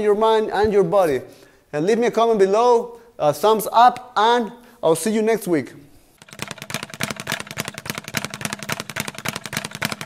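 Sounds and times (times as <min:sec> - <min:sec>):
rapid sharp knocks: 0:06.2 - 0:10.0.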